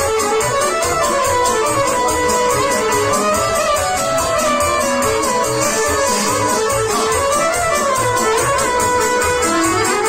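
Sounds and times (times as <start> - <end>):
live band playing folk dance music: 0.0 - 10.0.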